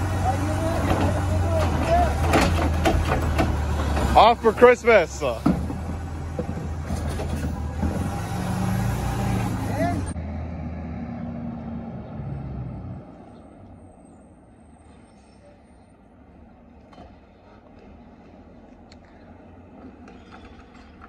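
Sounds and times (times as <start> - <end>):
garbage truck engine revving: 0.0 - 13.3
distant garbage truck running: 0.0 - 21.0.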